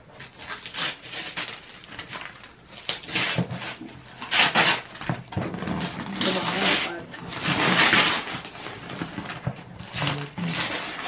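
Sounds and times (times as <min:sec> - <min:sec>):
wrapping paper tearing: 0:00.2 - 0:11.0.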